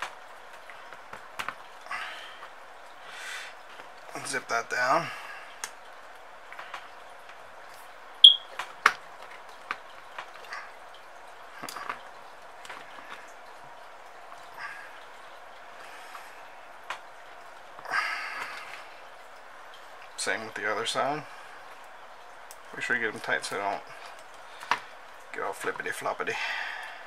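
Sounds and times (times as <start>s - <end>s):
faint steady hiss: 0.0s - 27.0s.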